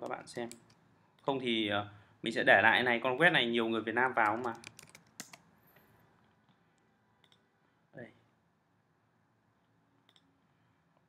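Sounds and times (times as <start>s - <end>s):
computer mouse clicks: 4.2s - 5.4s.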